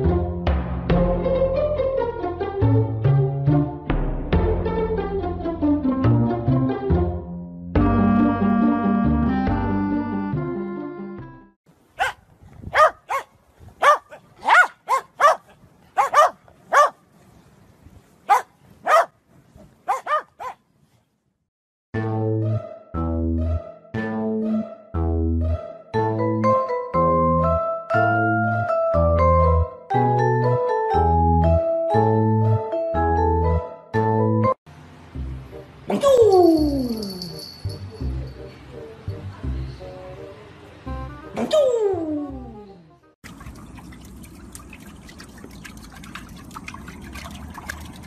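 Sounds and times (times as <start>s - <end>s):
dog barking: 12.0s - 17.0s, 18.3s - 19.2s, 19.9s - 20.6s.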